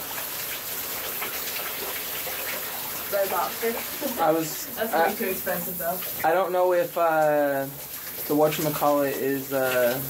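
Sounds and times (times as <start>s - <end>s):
shower water spraying: 0.0s - 10.0s.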